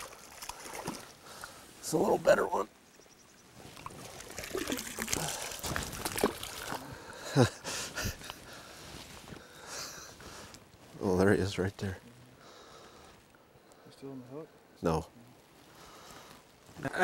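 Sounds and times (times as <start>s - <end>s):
fish splashing in water: 0.0s - 1.2s, 3.8s - 6.9s.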